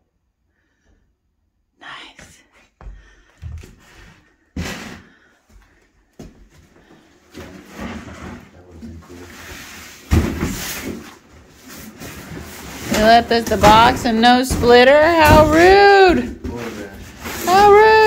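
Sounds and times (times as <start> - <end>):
cardboard rustling and scraping: 7.4 - 15.6.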